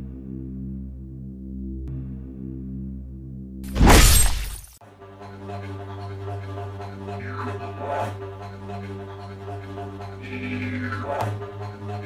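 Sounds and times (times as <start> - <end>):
low droning music: 0.0 - 12.0
loud crashing shattering effect: 3.7 - 4.8.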